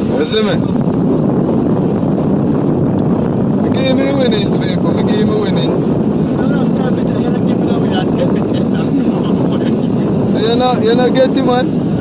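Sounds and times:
sea surf breaking on rocks: 0.0 - 2.0
wind on microphone: 0.0 - 12.0.

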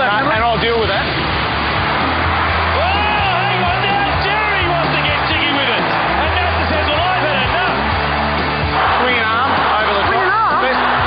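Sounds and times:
background music with bass: 0.0 - 11.0.

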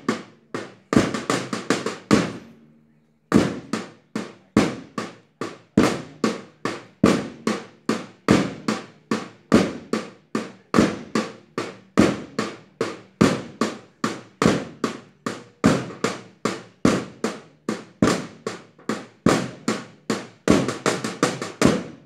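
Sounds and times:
percussion beat: 0.0 - 2.6, 3.3 - 22.0.

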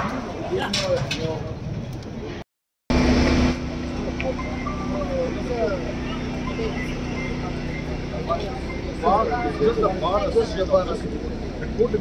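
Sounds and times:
crowd voices: 0.0 - 12.0
vehicle engine idling: 2.9 - 12.0.

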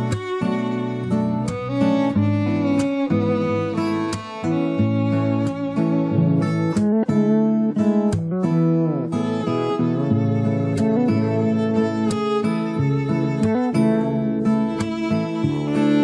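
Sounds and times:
acoustic guitar strumming chords: 0.0 - 16.0
bowed violin melody: 0.0 - 16.0
fretless electric bass: 0.0 - 16.0.

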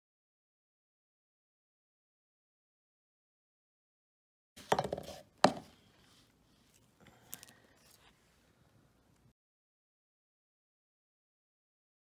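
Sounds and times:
object knocking on workbench: 4.6 - 5.7.

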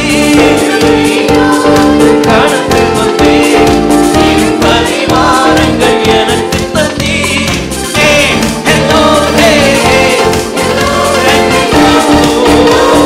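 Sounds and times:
gospel music with choir: 0.0 - 13.0.

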